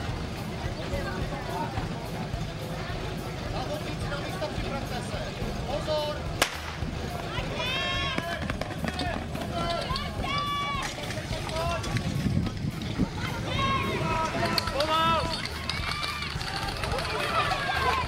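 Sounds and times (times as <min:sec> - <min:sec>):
starter pistol crack: 0:06.4 - 0:06.8
high-pitched shouting: 0:09.6 - 0:10.9, 0:13.2 - 0:18.0.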